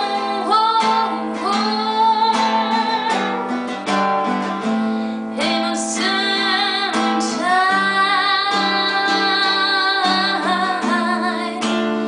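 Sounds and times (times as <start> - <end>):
woman singing long notes: 0.0 - 3.5
strummed classical guitar: 0.0 - 12.0.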